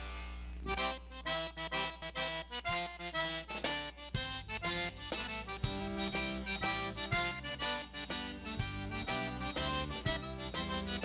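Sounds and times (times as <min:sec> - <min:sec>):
low bass notes: 0:00.0 - 0:03.4, 0:04.2 - 0:11.0
accordion playing a waltz: 0:00.0 - 0:11.0
drum strikes: 0:03.5 - 0:11.0.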